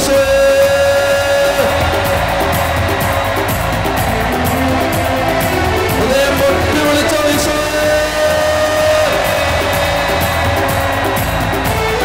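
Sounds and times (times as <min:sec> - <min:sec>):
even drum beat: 0:00.0 - 0:12.0
worship band playing: 0:00.0 - 0:12.0.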